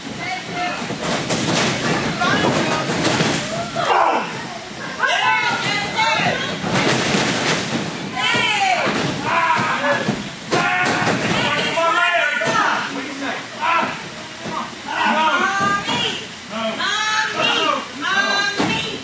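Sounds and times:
spectators shouting: 0:03.5 - 0:06.5, 0:08.2 - 0:12.8.

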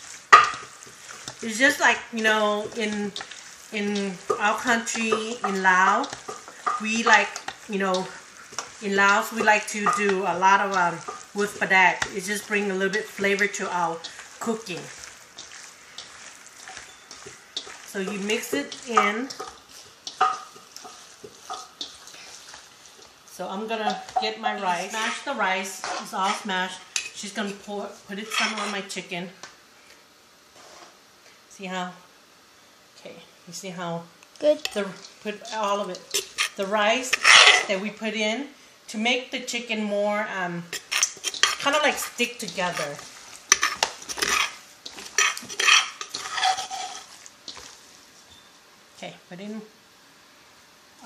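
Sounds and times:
wet squishing of meat: 0:13.8 - 0:23.1, 0:46.9 - 0:48.0
wet squishing of raw chicken: 0:14.1 - 0:17.9
rubbing against metal bowl: 0:28.2 - 0:28.8, 0:40.7 - 0:47.7.

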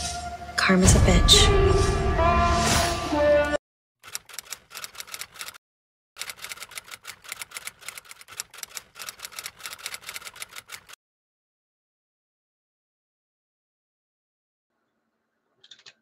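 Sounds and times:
typewriter keystrokes clicking: 0:04.1 - 0:05.6, 0:06.2 - 0:11.0.

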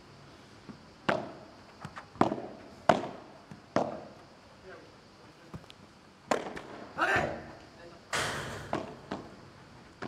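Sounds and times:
padel ball pops off rackets: 0:06.3 - 0:06.8, 0:08.6 - 0:09.3.

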